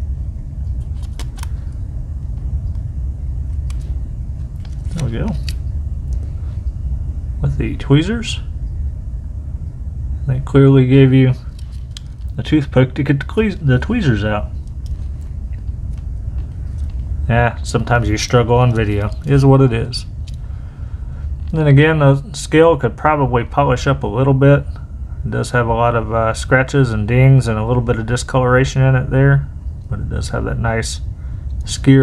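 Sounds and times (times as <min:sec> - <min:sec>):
steady low rumble: 0:00.0 - 0:32.0.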